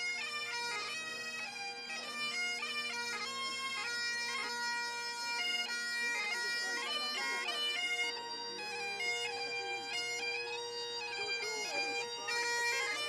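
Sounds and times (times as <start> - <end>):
bagpipes playing a march: 0.0 - 13.0.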